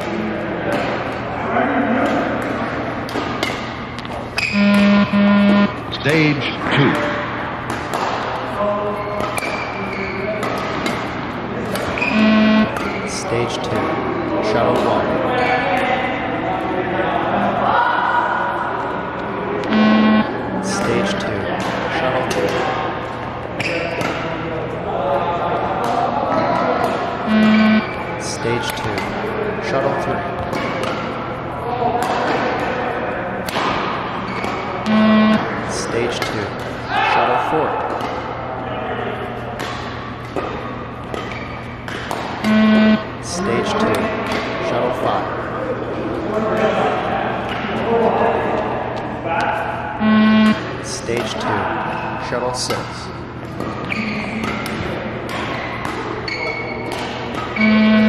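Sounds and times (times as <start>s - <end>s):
loud electronic beep: 4.4s - 6.1s, 12.0s - 12.8s, 19.7s - 20.3s, 27.3s - 28.0s, 34.9s - 35.5s, 42.4s - 43.1s, 50.0s - 50.7s, 57.6s - 58.0s.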